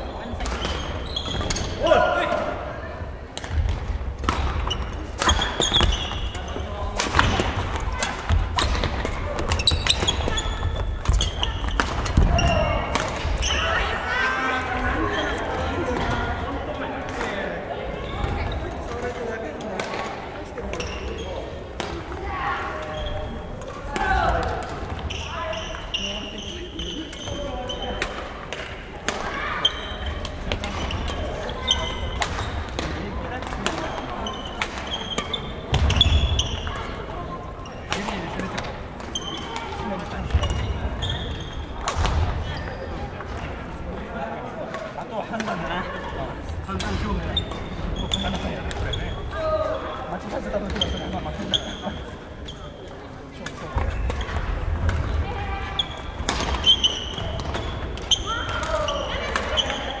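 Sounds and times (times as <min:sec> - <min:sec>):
shoes squeaking on wooden floor: 0:00.6 - 0:01.8, 0:04.6 - 0:06.8, 0:07.7 - 0:13.8, 0:40.3 - 0:41.8, 0:47.0 - 0:49.6
rackets hitting shuttlecocks: 0:03.3 - 0:06.3, 0:06.9 - 0:13.6, 0:27.9 - 0:29.4, 0:41.6 - 0:42.4, 0:56.0 - 0:59.9
people talking: 0:05.2 - 1:00.0.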